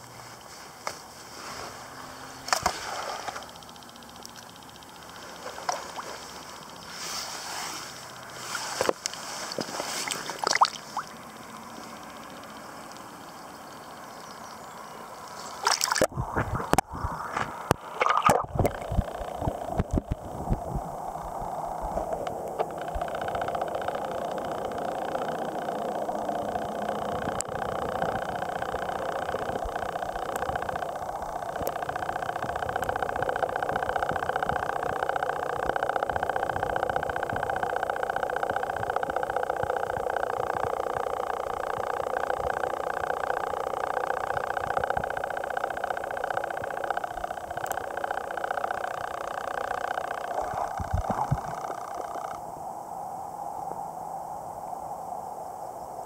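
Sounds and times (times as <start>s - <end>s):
faint ticks: 0.0s - 52.7s
muffled underwater rushing: 15.5s - 52.6s.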